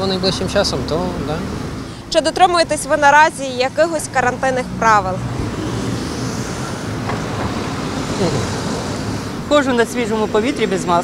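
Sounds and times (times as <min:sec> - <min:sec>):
road traffic passing: 0:00.0 - 0:11.0
car driving by: 0:03.7 - 0:10.8.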